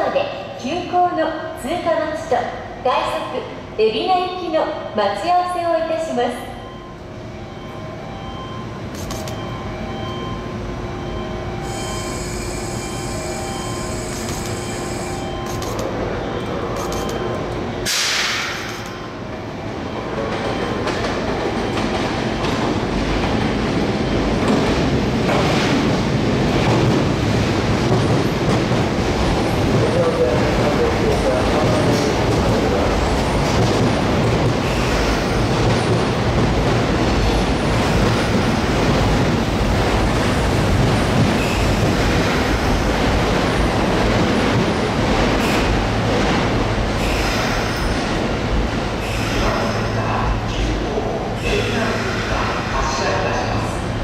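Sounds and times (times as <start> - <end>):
train rumble: 7.0 - 54.0
train wheels clattering over rails: 24.4 - 49.9.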